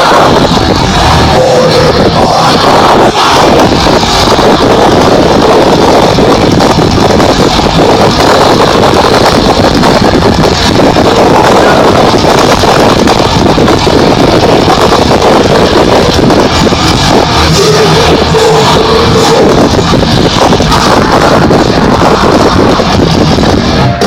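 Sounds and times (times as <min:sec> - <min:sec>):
distorted loud metal music: 0:00.0 - 0:24.0.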